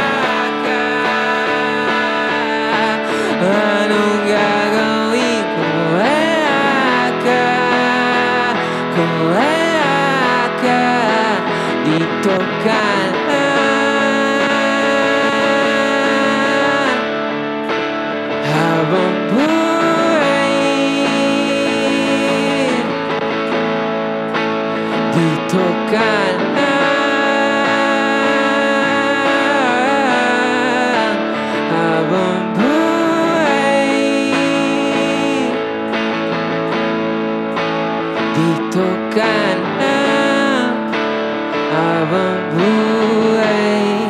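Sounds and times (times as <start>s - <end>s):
distorted electric guitar chords: 0.0s - 44.0s.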